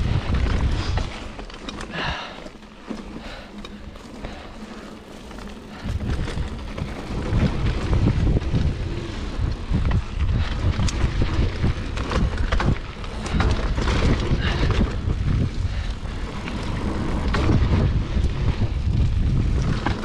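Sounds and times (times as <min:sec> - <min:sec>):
bike rattling over bumps: 0:00.0 - 0:20.0
bike tyres rumbling over dirt: 0:00.0 - 0:20.0
wind buffeting microphone: 0:00.0 - 0:20.0.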